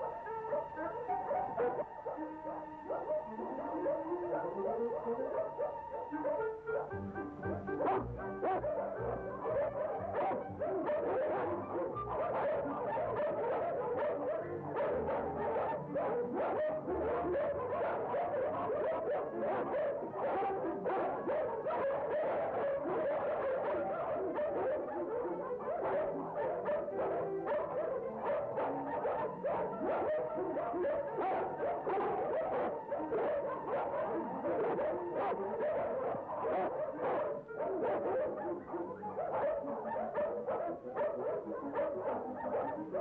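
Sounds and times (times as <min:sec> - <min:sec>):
dogs barking: 0:00.0 - 0:43.0
film score music: 0:00.0 - 0:43.0.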